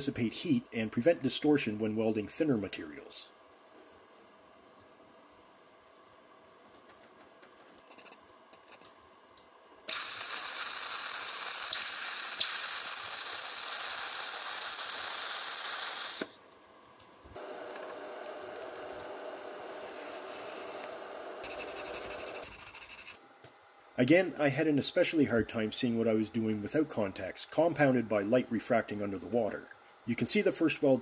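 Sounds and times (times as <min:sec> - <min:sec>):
laser welder hiss and sizzle: 0:09.9 - 0:16.4, 0:17.4 - 0:23.2.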